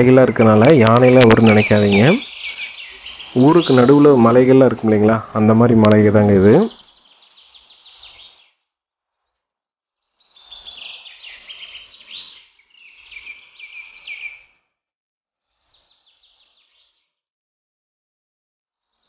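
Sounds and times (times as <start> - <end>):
birds chirping: 0.0 - 8.6, 10.2 - 14.6.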